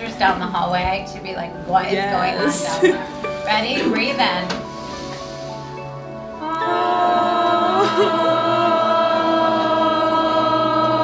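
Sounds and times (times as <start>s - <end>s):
students chanting in unison: 6.4s - 11.0s.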